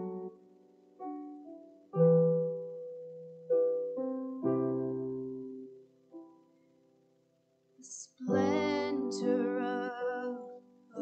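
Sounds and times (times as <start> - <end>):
woman singing: 7.8 - 11.0.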